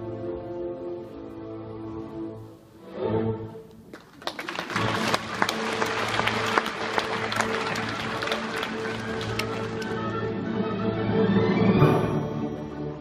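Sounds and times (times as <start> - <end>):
audience applauding: 3.9 - 10.2
orchestra playing: 4.6 - 13.0.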